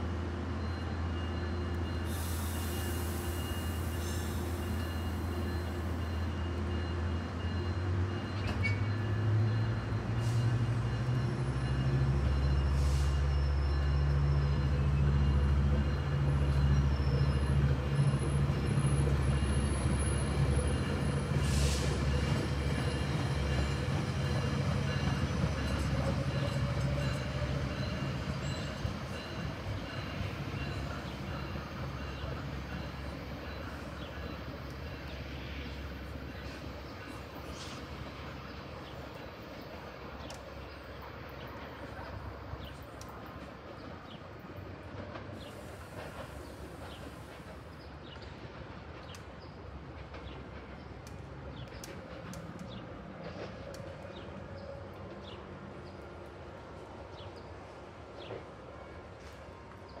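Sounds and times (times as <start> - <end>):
diesel locomotive engine: 0.0 - 60.0
train cars rumbling on rails: 0.0 - 60.0.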